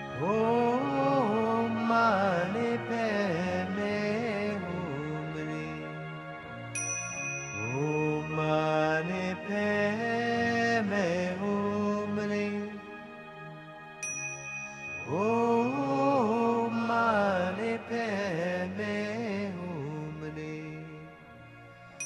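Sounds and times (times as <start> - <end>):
person singing sliding notes: 0.0 - 6.2, 7.6 - 12.9, 15.0 - 21.0
small bell ringing: 6.8 - 7.8, 14.0 - 15.1.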